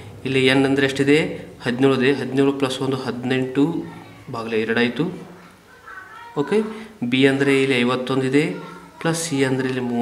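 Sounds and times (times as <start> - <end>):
man speaking: 0.2 - 5.3, 6.4 - 10.0.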